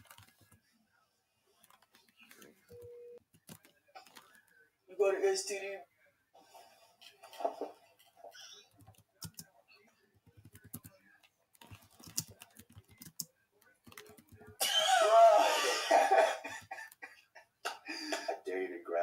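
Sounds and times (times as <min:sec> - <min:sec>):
typing on computer keyboard: 0:00.0 - 0:00.5, 0:01.6 - 0:04.3, 0:08.7 - 0:09.5, 0:10.2 - 0:11.0, 0:11.6 - 0:14.6.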